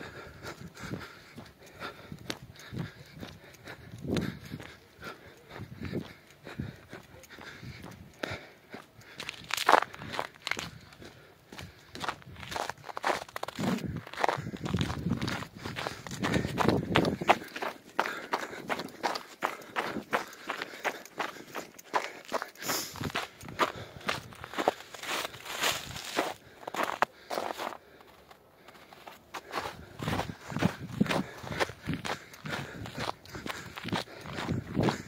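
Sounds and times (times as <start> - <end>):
footsteps on snow and dead leaves: 12.0 - 35.0.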